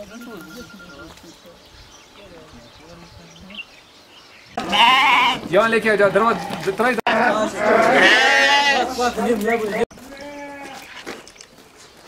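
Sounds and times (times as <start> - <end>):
sheep bleating loudly: 4.6 - 9.1, 10.0 - 10.9.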